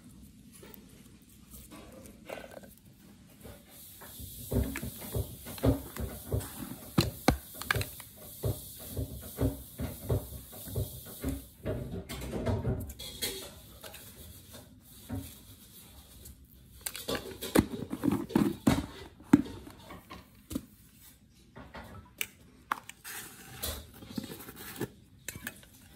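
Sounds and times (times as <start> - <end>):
salt spooned into mortar: 1.2 - 11.4.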